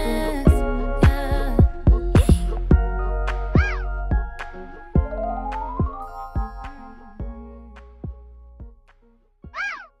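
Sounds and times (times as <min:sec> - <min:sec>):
soft music notes: 0:00.0 - 0:09.0
cat meowing: 0:03.6 - 0:03.8, 0:09.6 - 0:10.0.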